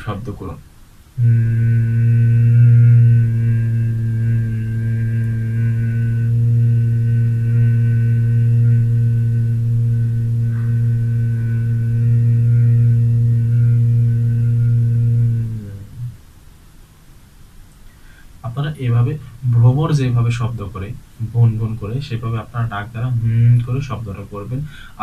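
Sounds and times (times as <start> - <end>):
man humming low: 1.2 - 16.2, 22.4 - 25.0.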